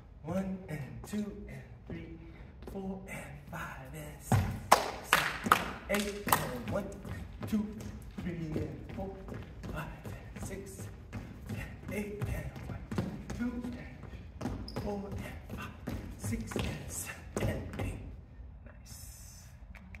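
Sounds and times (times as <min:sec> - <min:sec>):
man calling out: 0:00.2 - 0:10.8
sneakers on wooden floor: 0:01.0 - 0:04.7, 0:05.4 - 0:18.2.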